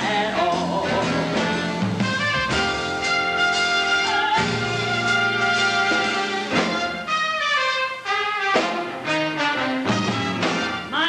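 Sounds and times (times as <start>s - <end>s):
band with brass playing chords: 0.0s - 11.0s.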